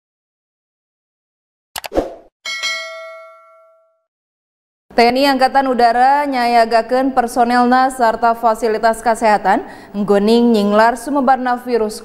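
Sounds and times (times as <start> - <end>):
bright bell ding: 2.5 - 4.1.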